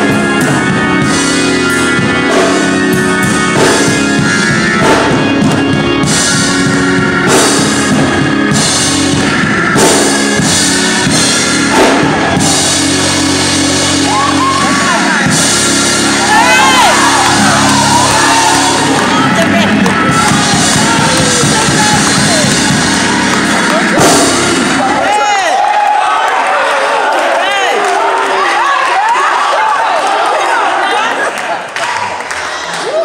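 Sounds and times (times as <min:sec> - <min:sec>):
church organ chords: 0:00.0 - 0:25.0
drum kit beat: 0:00.0 - 0:25.4.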